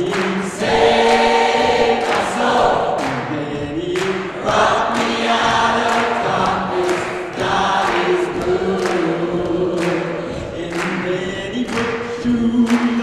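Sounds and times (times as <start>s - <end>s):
gospel choir singing: 0.0s - 13.0s.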